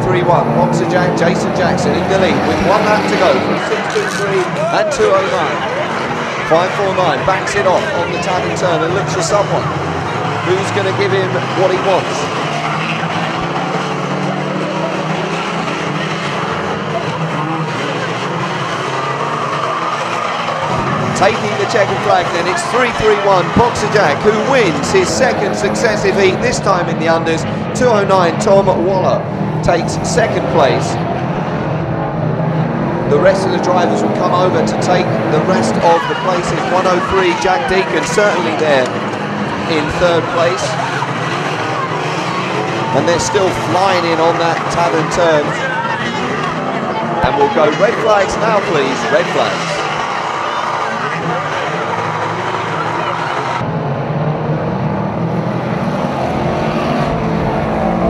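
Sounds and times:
tyres skidding: 0:00.0 - 0:53.8
racing cars revving: 0:00.0 - 0:58.0.

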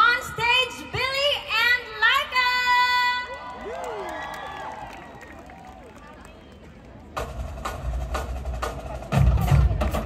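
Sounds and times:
faint crowd voices: 0:00.0 - 0:10.0
live music with heavy bass beat: 0:07.2 - 0:10.0.

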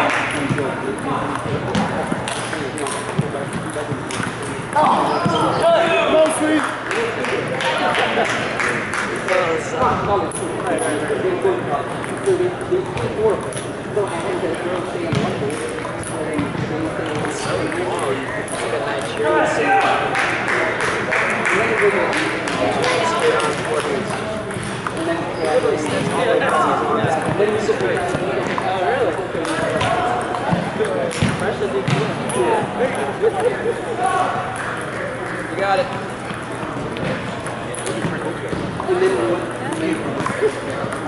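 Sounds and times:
voices talking: 0:00.0 - 0:41.0.

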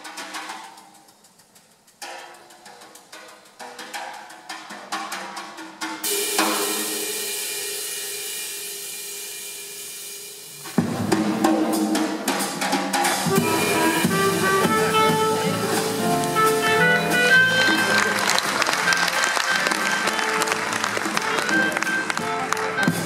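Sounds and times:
jazz drum solo: 0:00.0 - 0:23.0
cymbal crash ringing: 0:06.1 - 0:10.8
jazz band with clarinet: 0:10.7 - 0:23.0.

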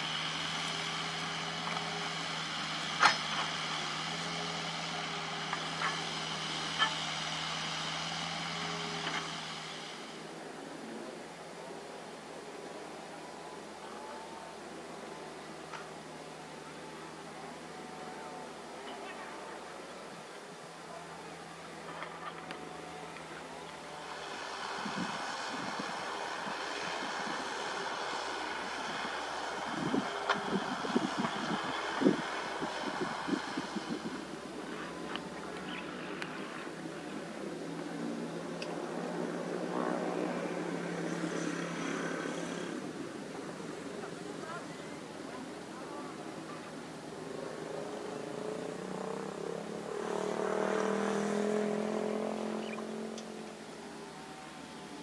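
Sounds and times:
distant diesel engine running: 0:00.0 - 0:10.3, 0:20.8 - 0:55.0.

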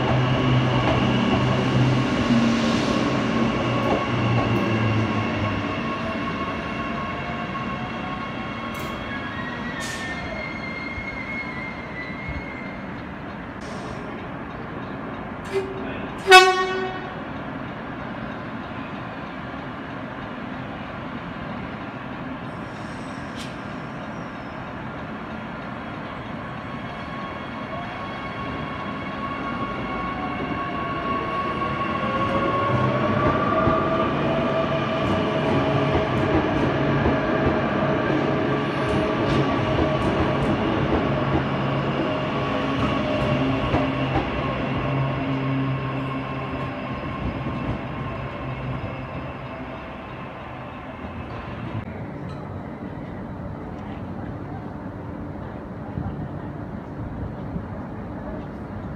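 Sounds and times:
train rolling rumble: 0:00.0 - 0:58.9.

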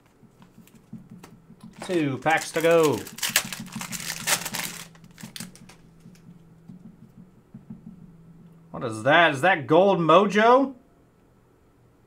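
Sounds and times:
faint steady hum: 0:00.0 - 0:12.0
cards clicking and rustling: 0:00.4 - 0:06.2
foil wrapper tearing and crinkling: 0:01.8 - 0:05.7.

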